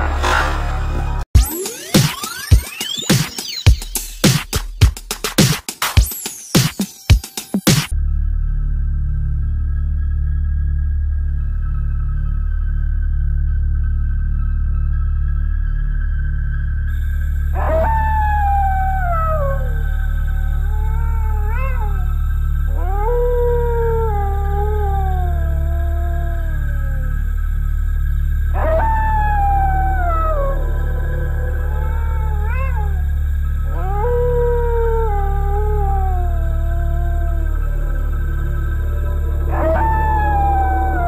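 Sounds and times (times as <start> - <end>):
low eerie drone: 8.0 - 41.0
canine howls sliding down: 17.5 - 27.1, 28.6 - 41.0.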